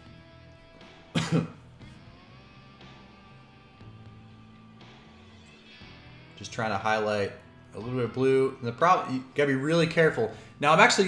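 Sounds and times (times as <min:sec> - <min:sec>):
background music: 0:00.0 - 0:11.0
person coughing: 0:01.1 - 0:01.7.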